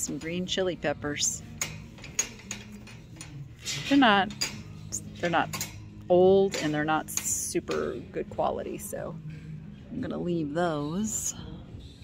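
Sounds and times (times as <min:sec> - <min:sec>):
low store hum: 0:00.0 - 0:12.0.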